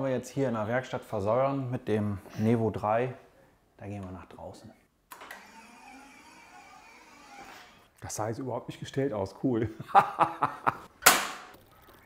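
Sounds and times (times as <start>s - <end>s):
work stand motor running: 5.2s - 7.8s.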